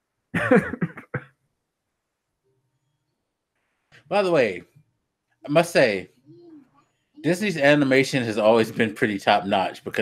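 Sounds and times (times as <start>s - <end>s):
man laughing: 0.4s - 1.2s, 7.3s - 10.0s.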